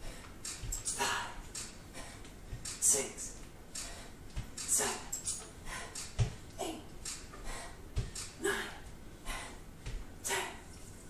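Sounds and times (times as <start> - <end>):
bare foot thud on floor mat: 6.1 - 6.4.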